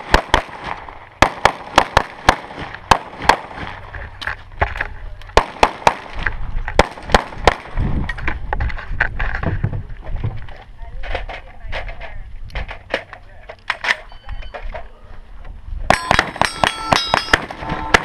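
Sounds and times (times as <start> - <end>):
rapid pistol shots: 0.0 - 3.8, 5.4 - 7.8.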